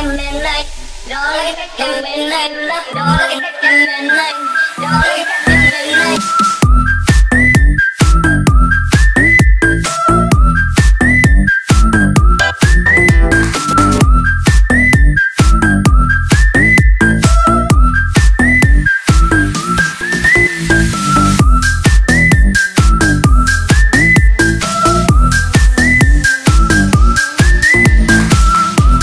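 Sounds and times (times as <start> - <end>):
instrumental dance music: 0.0 - 29.0.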